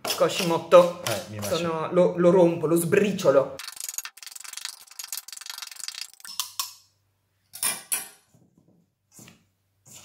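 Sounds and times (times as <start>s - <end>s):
knives scraping steel bowl: 3.6s - 6.7s.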